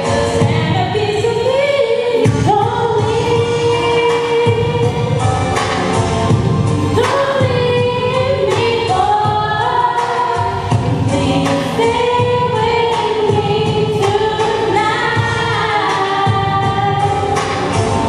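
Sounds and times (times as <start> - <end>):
girls singing close harmony: 0.0 - 5.4, 6.9 - 18.0
lead voice singing: 7.0 - 18.0.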